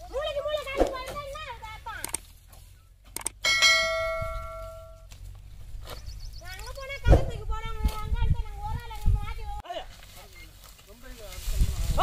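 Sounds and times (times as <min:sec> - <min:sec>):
ringing bell strike: 0:03.4 - 0:05.0.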